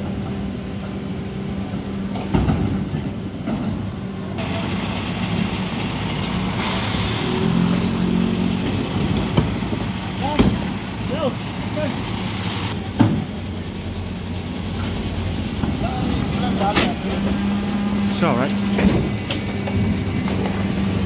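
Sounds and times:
truck diesel engine running: 0:00.0 - 0:21.0
air hiss: 0:06.6 - 0:07.5.

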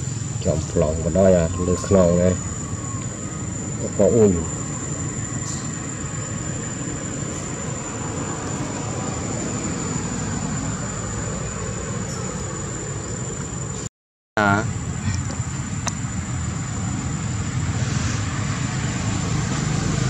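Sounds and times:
insect drone: 0:00.0 - 0:20.0
background hiss: 0:14.6 - 0:19.8.

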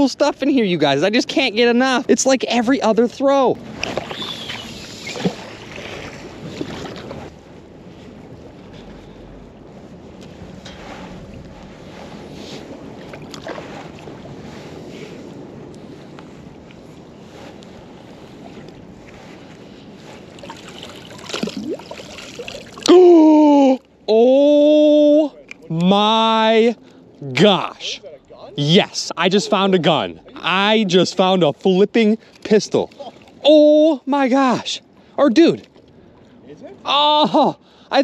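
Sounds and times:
water lapping at riverbank: 0:00.0 - 0:37.9.

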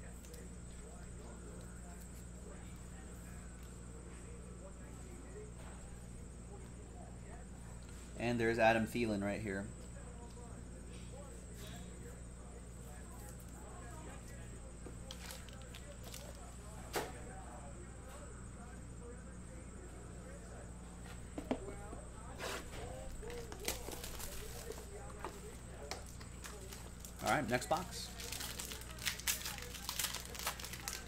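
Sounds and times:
faint voices: 0:00.0 - 0:31.0
low electrical hum: 0:00.0 - 0:31.0.

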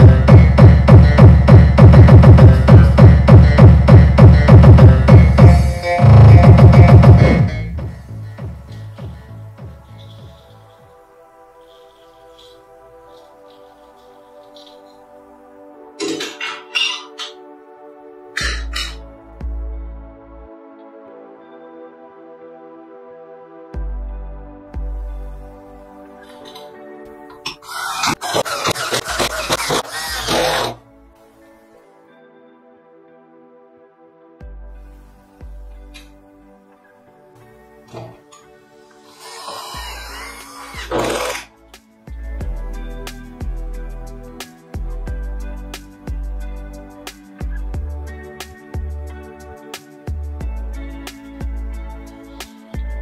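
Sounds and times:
electronic music with heavy kick drum: 0:00.0 - 0:10.6, 0:18.4 - 0:20.0, 0:24.8 - 0:25.6, 0:27.4 - 0:30.8, 0:39.5 - 0:53.0
electric screwdriver driving screw: 0:27.5 - 0:30.8, 0:39.0 - 0:41.5.

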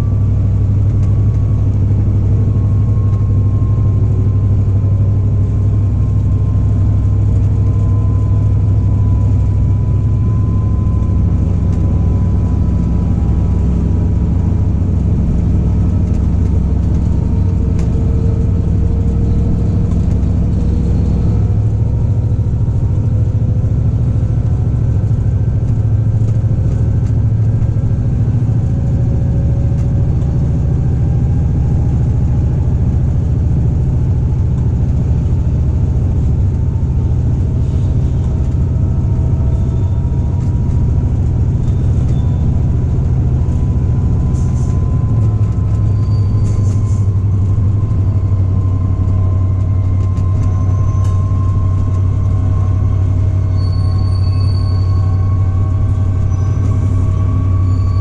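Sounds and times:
diesel locomotive engine drone: 0:00.0 - 0:58.0
faint high squeaks: 0:41.6 - 0:42.5, 0:45.5 - 0:47.2, 0:50.0 - 0:52.0, 0:52.6 - 0:58.0.

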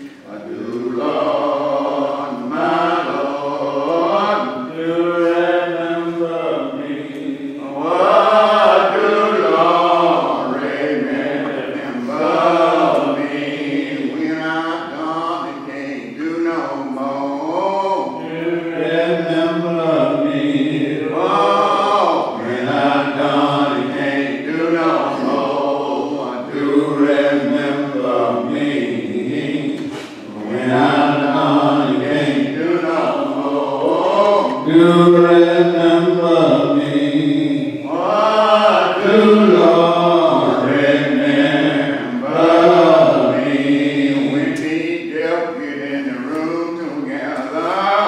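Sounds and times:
voices singing a slow hymn: 0:00.0 - 0:48.0.

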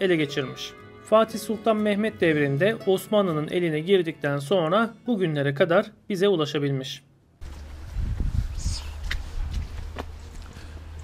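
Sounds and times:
footsteps on wet stone steps: 0:09.0 - 0:11.0.

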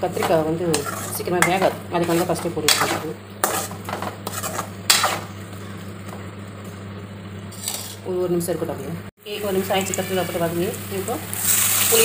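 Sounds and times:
metal spoon scraping a pan: 0:00.0 - 0:05.8, 0:07.5 - 0:08.0, 0:09.7 - 0:10.6
vegetables sizzling in oil: 0:00.0 - 0:06.6, 0:09.2 - 0:12.0.

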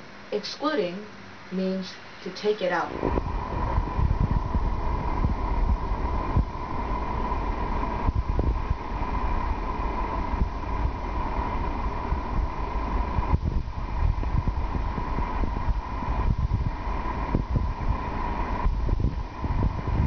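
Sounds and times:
low rumble: 0:02.9 - 0:20.0.

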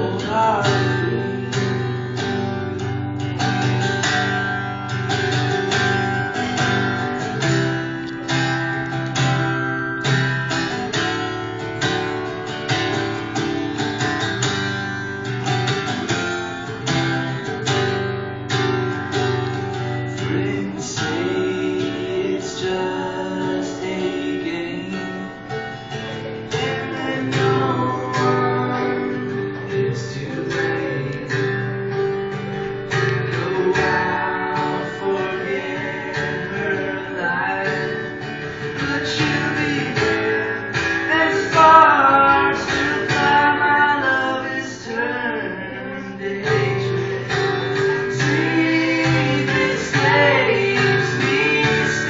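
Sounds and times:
acoustic guitar strumming: 0:00.0 - 0:52.0.

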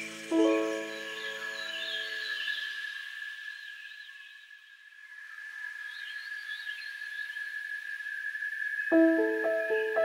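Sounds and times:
high insect drone: 0:00.0 - 0:10.0
warbling bird chirps: 0:08.6 - 0:10.0.

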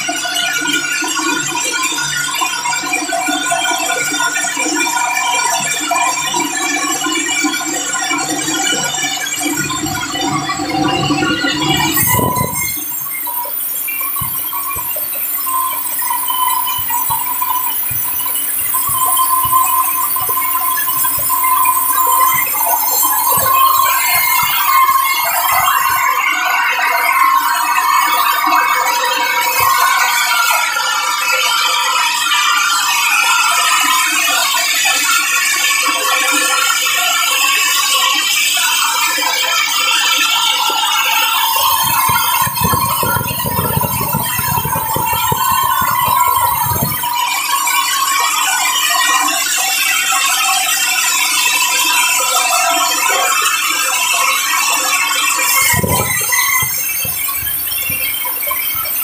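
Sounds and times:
band saw blade whining: 0:37.8 - 0:48.8.

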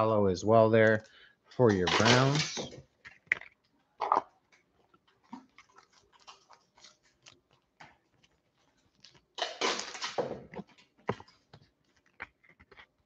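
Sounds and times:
trading cards rustling and clicking: 0:00.8 - 0:13.0.

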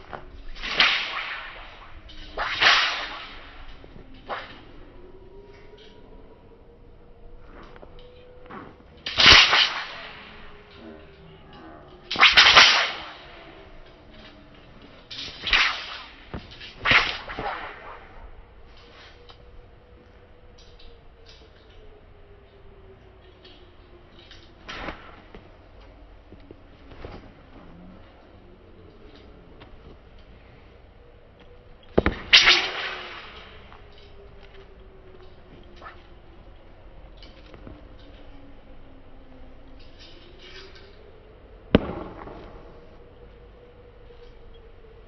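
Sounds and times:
sword swishing through air: 0:00.0 - 0:04.9, 0:08.5 - 0:11.1, 0:12.1 - 0:19.4
sharp cracks of swung weapon: 0:00.2 - 0:04.7, 0:09.0 - 0:10.5, 0:12.1 - 0:13.8, 0:15.1 - 0:19.2, 0:24.6 - 0:25.4, 0:32.0 - 0:34.7.

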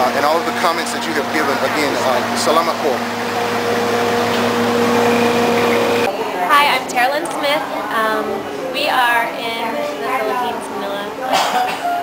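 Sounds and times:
vehicle idling hum: 0:00.0 - 0:11.0.

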